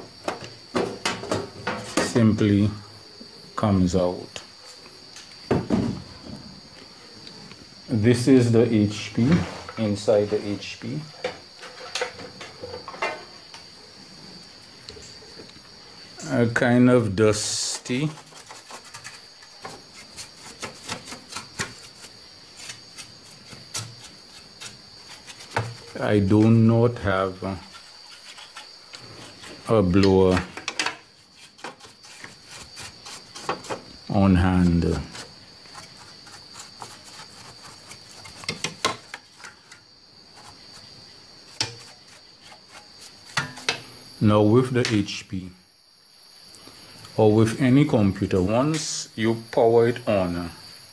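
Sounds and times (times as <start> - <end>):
crickets trilling: 0.0 - 50.9.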